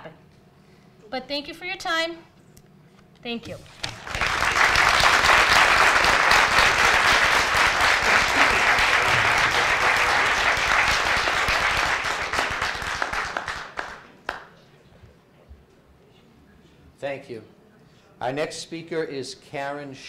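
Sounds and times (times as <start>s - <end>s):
audience applauding: 3.8s - 14.5s.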